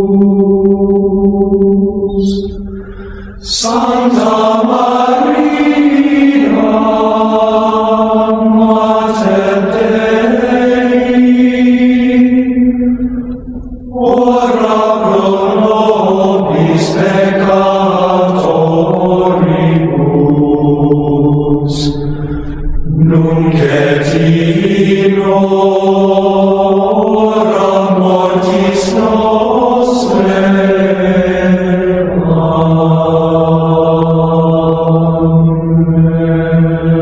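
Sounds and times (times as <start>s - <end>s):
voices singing chant: 0.0s - 37.0s.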